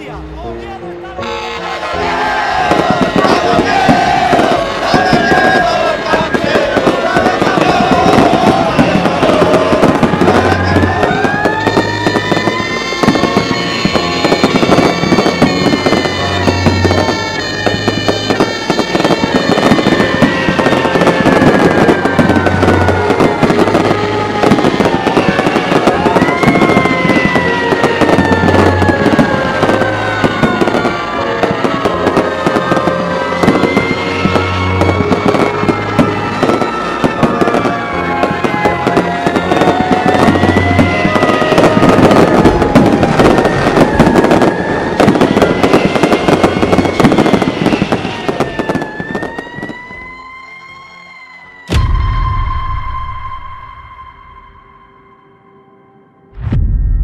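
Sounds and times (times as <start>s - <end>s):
fireworks crackling: 1.2s - 50.1s
low thump: 51.7s - 53.4s, 56.4s - 57.0s
gliding whistle tones: 52.0s - 55.5s.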